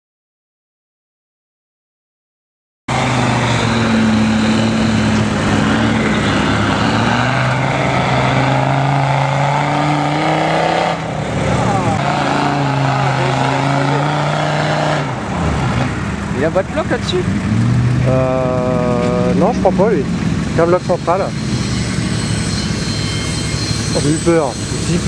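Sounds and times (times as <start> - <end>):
engine running under load: 2.9 - 25.0.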